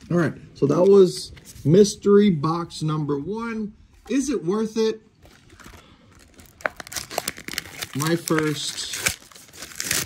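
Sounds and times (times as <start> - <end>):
packaging crinkling and tearing: 5.2 - 10.0.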